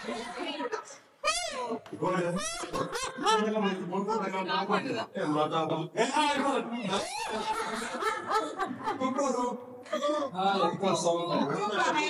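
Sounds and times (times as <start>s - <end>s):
men talking: 1.9s - 12.0s
men laughing: 2.2s - 4.0s, 6.4s - 11.7s.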